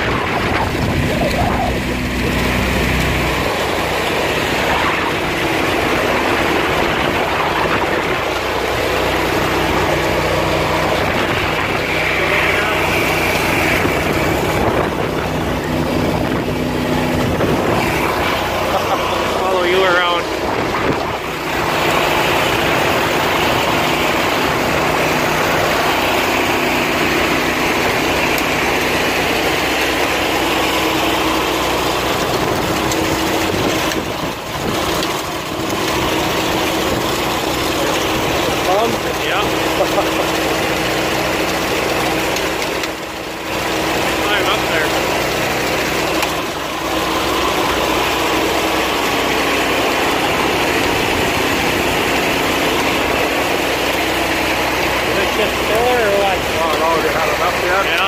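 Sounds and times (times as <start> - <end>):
engine idling: 0.0 - 58.0
grain auger running: 0.0 - 58.0
grain pouring into hopper: 1.8 - 58.0.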